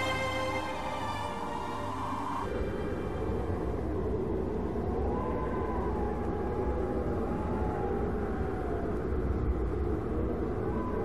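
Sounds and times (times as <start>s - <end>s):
wavering whine: 0.0s - 11.0s.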